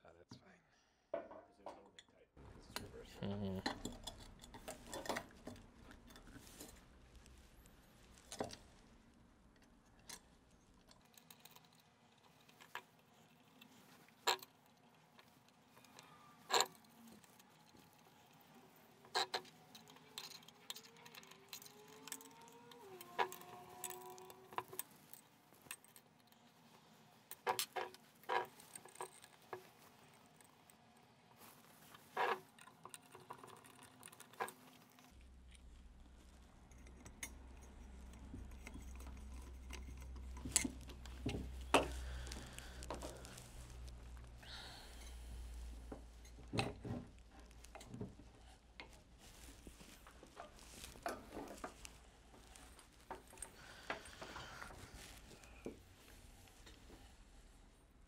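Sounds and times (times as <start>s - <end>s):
metal clicks and clinks: 3.6s - 6.4s, 9.9s - 26.4s
low steady hum: 35.0s - 58.0s.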